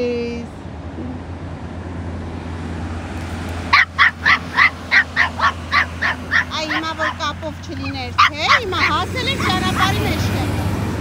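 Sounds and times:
small dog yapping: 3.7s - 7.3s, 8.2s - 10.2s.

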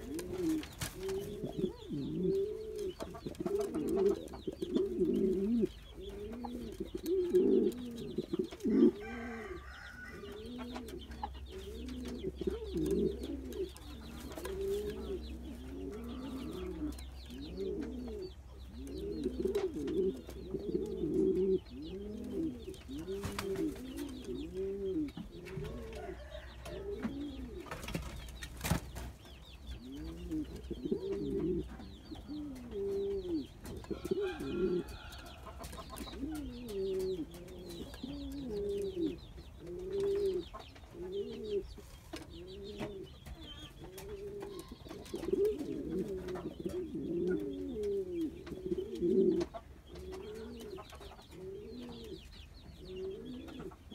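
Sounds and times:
pigeon cooing: 0.0s - 27.8s, 29.8s - 53.9s.

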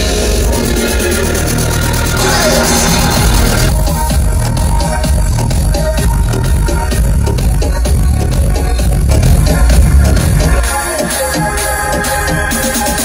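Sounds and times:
electronic dance music with bass: 0.0s - 13.0s.

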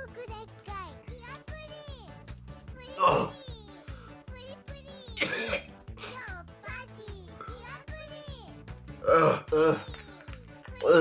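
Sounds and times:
background music with steady beat: 0.0s - 11.0s
man coughing: 5.2s - 5.7s.

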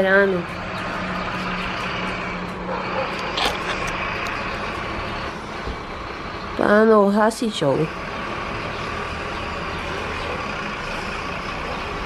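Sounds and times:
fire engine idling: 0.0s - 12.0s.

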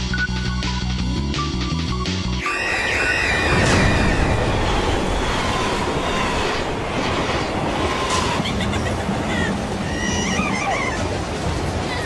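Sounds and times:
loud rumbling noise: 2.5s - 12.0s.

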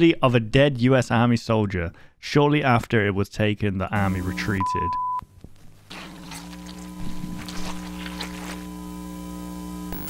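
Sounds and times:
electrical buzzing hum: 4.0s - 10.0s
high beep tone: 4.5s - 5.2s.

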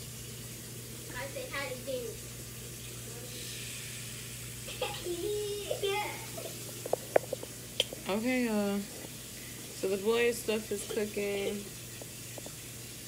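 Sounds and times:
waffle maker steaming hiss: 3.0s - 6.6s.

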